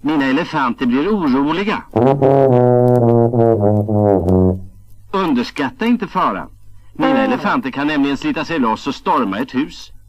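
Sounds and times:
tuba notes: 1.9 - 4.8, 7.0 - 7.6.

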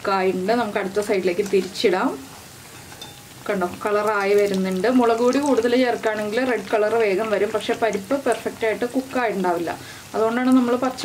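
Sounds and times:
people talking: 0.0 - 2.2, 3.5 - 11.0
fritters sizzling in hot oil: 0.0 - 11.0.

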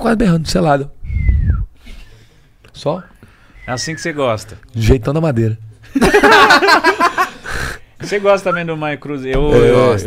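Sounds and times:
men laughing loudly: 5.8 - 7.8.

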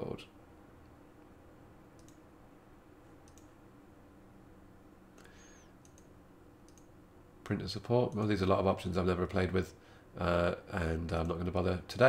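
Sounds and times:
computer mouse clicks: 2.0 - 2.2, 3.2 - 3.6, 5.2 - 6.9.

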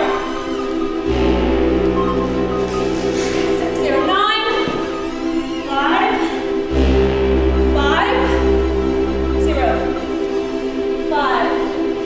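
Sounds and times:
choir-like chord: 0.2 - 12.0
deep bass note: 1.0 - 5.4, 6.7 - 10.3.

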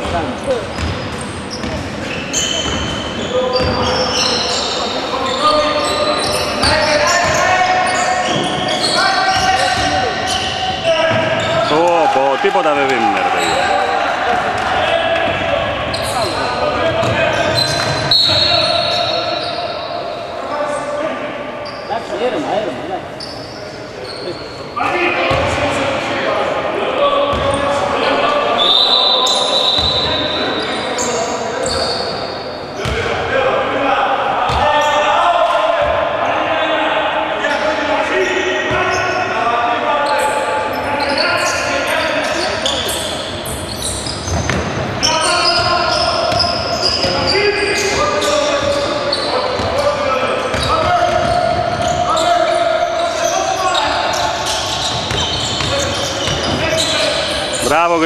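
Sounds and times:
basketball bouncing on wooden court: 0.0 - 2.0, 50.5 - 52.0, 54.8 - 56.6
players and spectators calling out: 0.0 - 58.0.

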